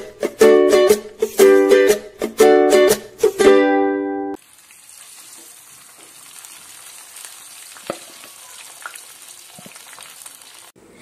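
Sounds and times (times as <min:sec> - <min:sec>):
cauliflower deep-frying in hot oil: 0:04.4 - 0:10.8.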